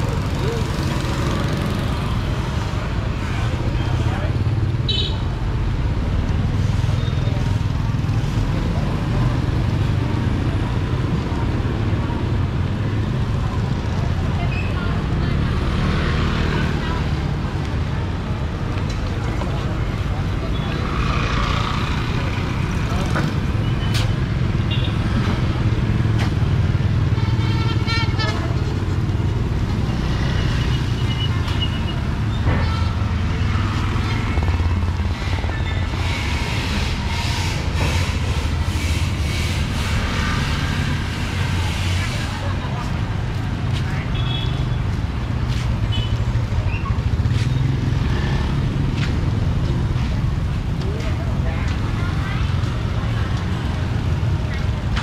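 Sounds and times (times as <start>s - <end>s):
people's voices: 0.0s - 4.7s, 40.4s - 55.0s
low traffic rumble: 0.0s - 55.0s
motorbike engines passing: 0.0s - 55.0s.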